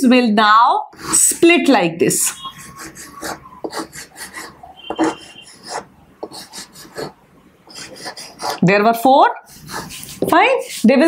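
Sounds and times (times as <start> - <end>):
chalk scraping on chalkboard: 1.0 - 1.3, 2.2 - 8.6, 9.4 - 11.0.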